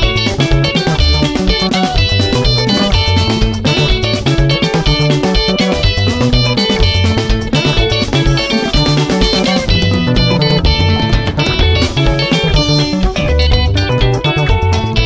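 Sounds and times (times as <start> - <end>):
bass guitar: 0.0 - 15.0
drums steady beat: 0.0 - 15.0
electric guitars interlocking: 0.0 - 15.0.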